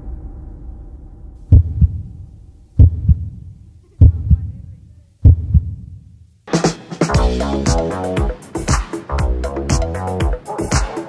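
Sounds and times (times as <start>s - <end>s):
deep heartbeat: 1.4s - 4.6s, 5.2s - 6.0s
loud synth-funk music: 6.5s - 11.0s.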